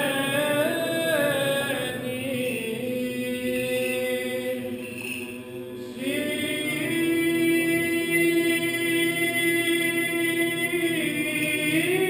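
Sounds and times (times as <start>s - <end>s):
unaccompanied liturgical singing: 0.0s - 12.0s.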